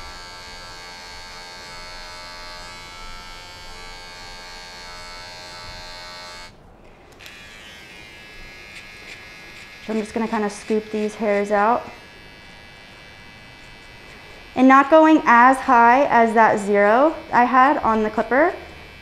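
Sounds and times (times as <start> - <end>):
electric hair clipper buzzing: 0.0 - 19.0.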